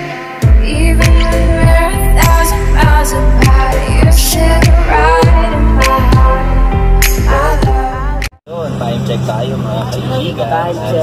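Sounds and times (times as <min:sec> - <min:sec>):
music: 0:00.0 - 0:08.4
people talking: 0:08.5 - 0:11.0.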